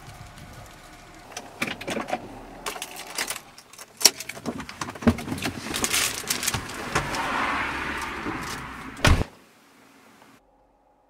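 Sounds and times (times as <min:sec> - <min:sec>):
cellophane crinkling: 0:02.7 - 0:06.9
heavy thump: 0:09.0 - 0:09.3.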